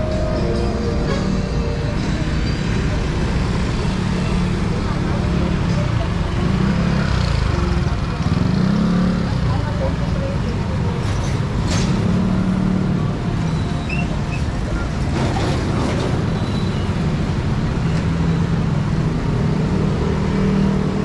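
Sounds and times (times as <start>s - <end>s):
motorcycle and car engines passing: 0.0s - 13.8s.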